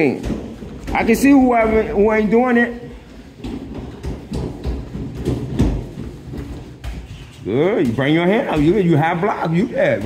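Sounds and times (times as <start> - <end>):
boxing gloves thudding and slapping: 3.4 - 7.1.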